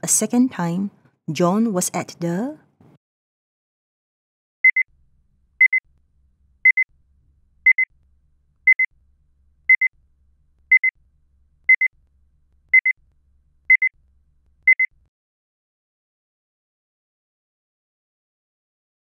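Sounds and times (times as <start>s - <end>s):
electronic timer double beeps: 4.6s - 4.9s, 5.6s - 5.8s, 6.6s - 6.9s, 7.6s - 7.9s, 8.7s - 8.9s, 9.7s - 9.9s, 10.7s - 10.9s, 11.7s - 11.9s, 12.8s - 13.0s, 13.7s - 13.9s, 14.7s - 14.9s.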